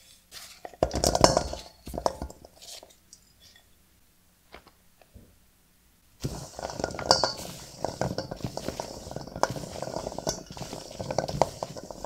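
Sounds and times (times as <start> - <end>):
balls clattering in a steel bowl: 0.6 - 3.6, 6.2 - 12.0.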